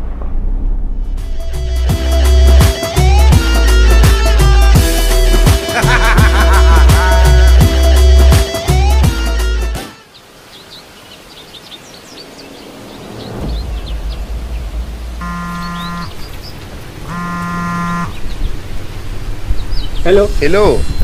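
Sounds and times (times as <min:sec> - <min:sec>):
low rumble: 0:00.0 - 0:02.6, 0:12.6 - 0:17.1
small birds chirping: 0:05.6 - 0:21.0
flat buzzy beeps: 0:15.2 - 0:16.1, 0:17.1 - 0:18.1.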